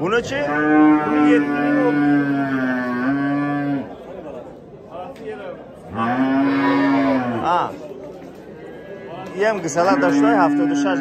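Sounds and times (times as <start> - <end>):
cattle mooing: 0.2 - 3.9, 5.9 - 7.6, 9.6 - 11.0.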